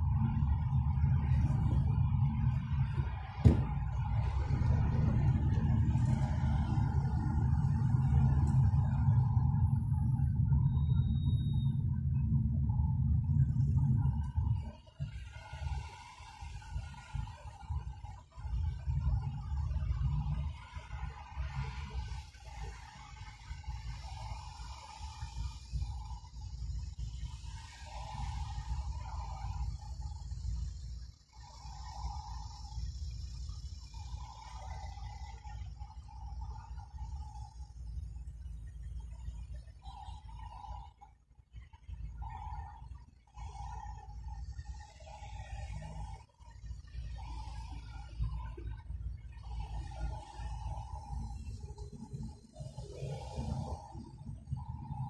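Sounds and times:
car road and engine rumble: 0.0 - 38.1.

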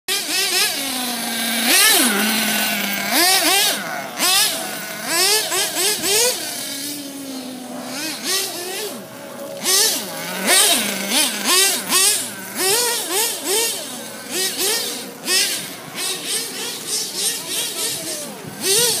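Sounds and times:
small nitro engine revving: 0.1 - 19.0.

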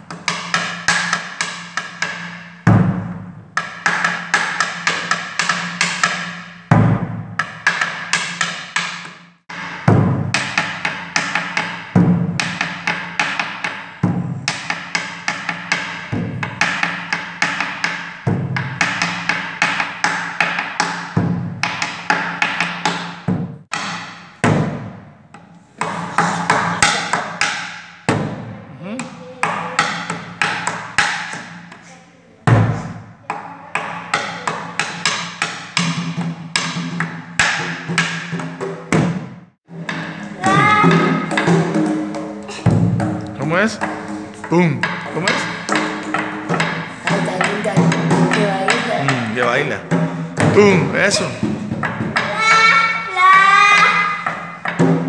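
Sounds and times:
deep drum strike: 9.8 - 10.4.

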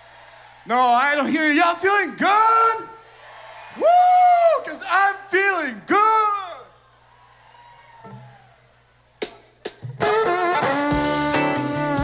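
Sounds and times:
man whooping into a microphone: 3.7 - 4.9.

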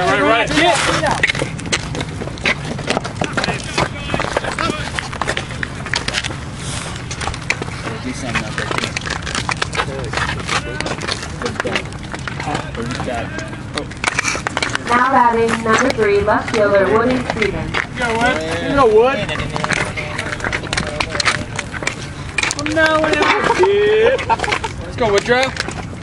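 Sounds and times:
indistinct voices of crowd: 0.0 - 24.7
low background noise: 0.0 - 26.0.

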